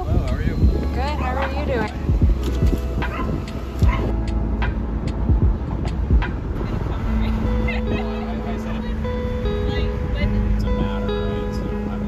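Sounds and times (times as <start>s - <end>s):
voices: 0.0s - 4.4s, 6.2s - 12.0s
car engine rumble: 0.0s - 12.0s
music with held notes: 0.0s - 12.0s.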